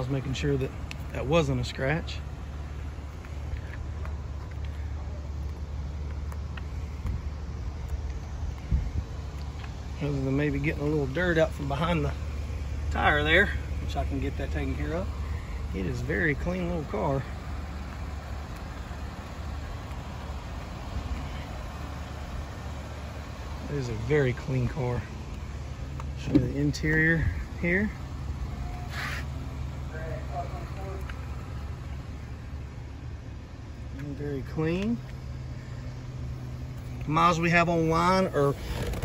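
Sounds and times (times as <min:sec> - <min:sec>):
car engine idling: 0:00.0 - 0:39.0
low outdoor rumble: 0:00.0 - 0:39.0.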